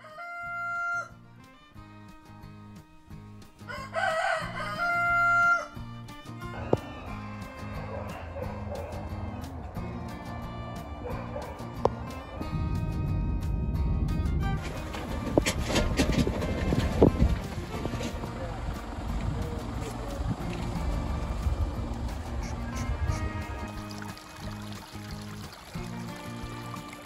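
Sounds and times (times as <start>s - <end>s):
rooster crowing: 0.0s - 1.2s, 3.6s - 5.9s
background music with bass line: 0.8s - 27.0s
low rumbling noise: 6.4s - 24.7s.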